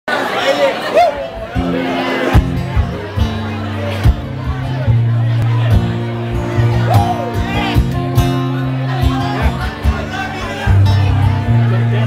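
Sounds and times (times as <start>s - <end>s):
voices chattering: 0.1s - 12.0s
acoustic guitar ringing: 1.4s - 11.9s.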